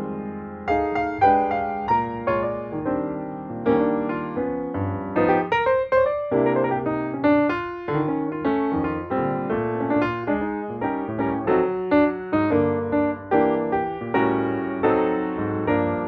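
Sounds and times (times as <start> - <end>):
piano chords and melody: 0.0 - 16.0.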